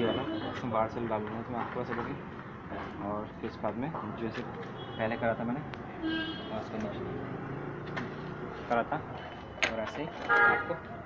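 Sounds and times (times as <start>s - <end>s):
passing traffic: 0.0s - 11.0s.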